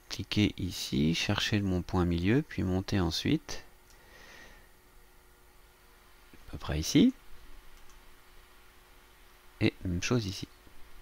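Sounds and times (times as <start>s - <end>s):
faint computer mouse clicks: 7.7s - 8.0s.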